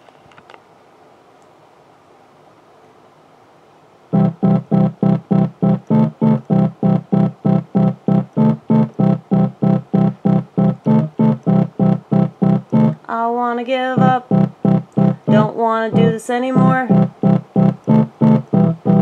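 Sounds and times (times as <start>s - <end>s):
electronic keyboard staccato notes: 4.1s - 13.2s, 13.8s - 19.0s.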